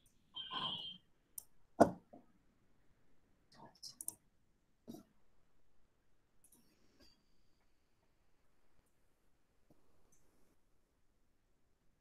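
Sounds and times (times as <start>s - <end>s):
computer mouse clicks: 3.9s - 4.2s.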